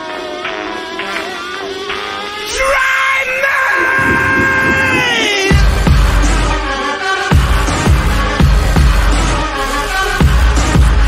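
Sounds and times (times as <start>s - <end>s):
screamed vocal note: 2.5s - 5.7s.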